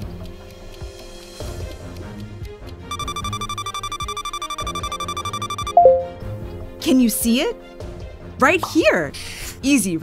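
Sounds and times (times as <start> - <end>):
rapidly pulsing timer beep: 2.9 - 6.1
background music with beat: 2.9 - 6.3.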